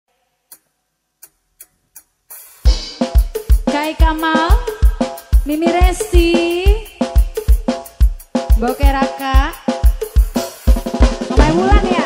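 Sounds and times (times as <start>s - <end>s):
sharp clock-like ticks: 0.4s - 3.4s.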